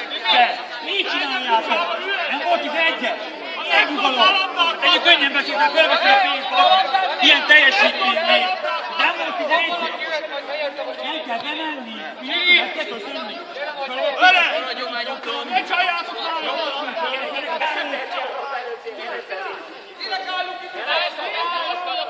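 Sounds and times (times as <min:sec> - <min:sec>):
people talking over one another: 0:00.0 - 0:22.0.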